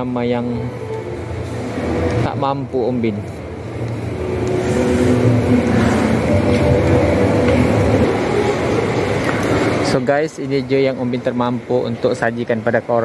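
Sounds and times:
low rumble: 0:03.4 - 0:09.8.

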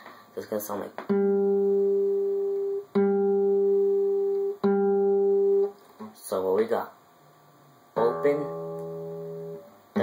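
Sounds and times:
acoustic guitar note plucked: 0:01.0 - 0:06.1, 0:08.0 - 0:10.0.

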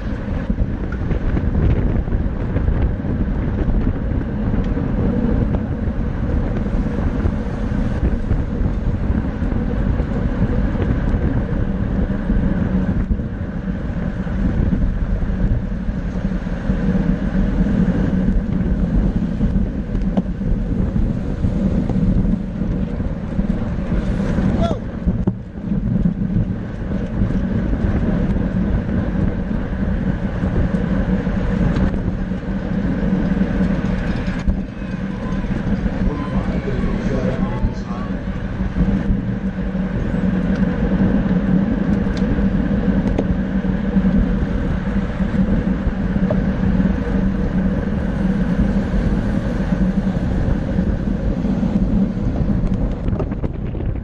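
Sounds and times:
wind rushing on microphone: 0:00.0 - 0:54.0.

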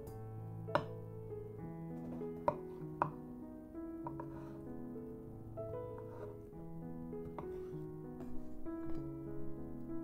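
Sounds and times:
soft piano music: 0:00.0 - 0:10.0.

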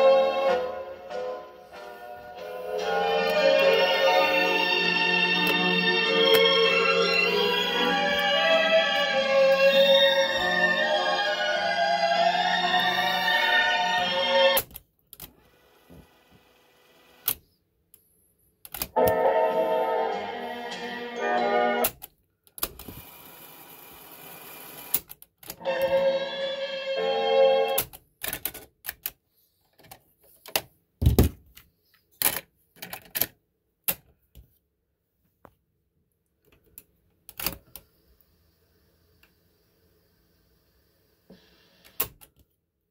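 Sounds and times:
music from small speaker: 0:00.0 - 0:14.6, 0:19.0 - 0:21.9, 0:25.6 - 0:27.8.

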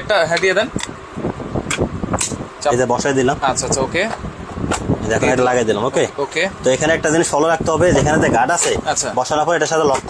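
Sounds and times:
man's voice: 0:05.0 - 0:10.0.

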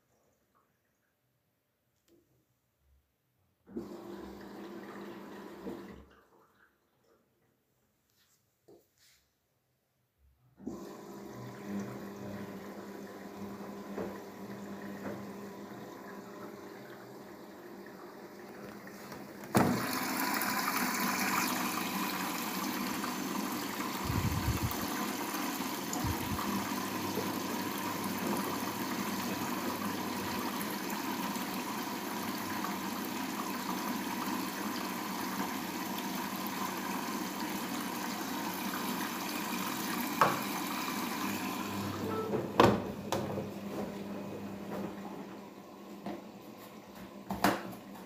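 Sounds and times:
water rushing into washing machine: 0:03.7 - 0:07.1, 0:10.6 - 0:47.7.

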